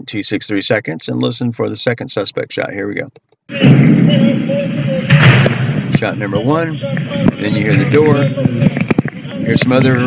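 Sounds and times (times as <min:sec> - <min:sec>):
muffled rumbling noise: 0:00.9 - 0:10.0
faint distant bang: 0:03.5 - 0:09.4.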